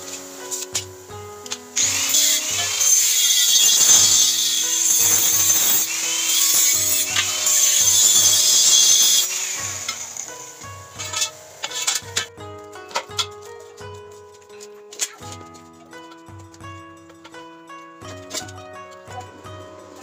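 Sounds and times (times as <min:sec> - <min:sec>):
angle grinder cutting metal: 0:01.8 - 0:12.3.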